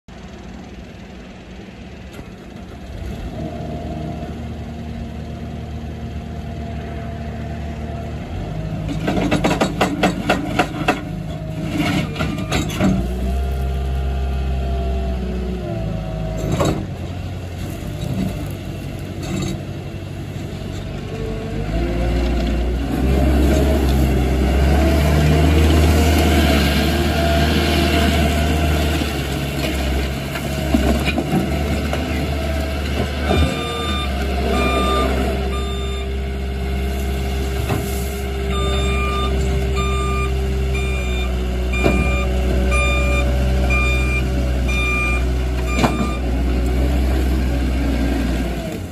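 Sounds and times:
diesel engine running: 0.1 - 48.9.

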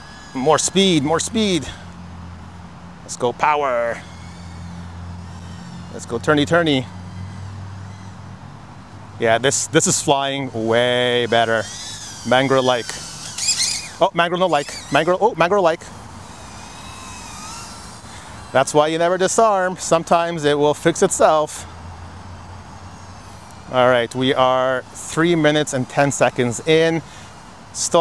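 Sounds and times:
drone motors humming: 0.0 - 28.0
faint high propeller whine: 0.0 - 28.0.

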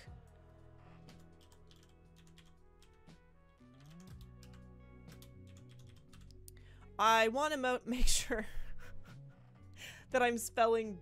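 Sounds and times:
soft background music: 0.0 - 11.0
keyboard typing: 1.2 - 3.0, 3.7 - 6.4.

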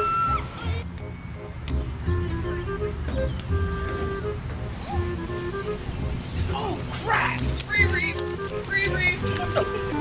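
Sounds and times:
background music: 0.0 - 10.0
people's voices: 6.5 - 10.0.

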